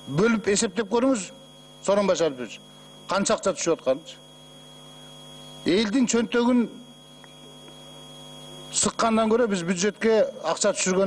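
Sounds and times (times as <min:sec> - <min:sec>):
electrical mains hum: 0:00.0 - 0:11.0
man speaking: 0:00.1 - 0:04.2, 0:05.7 - 0:06.8, 0:08.7 - 0:11.0.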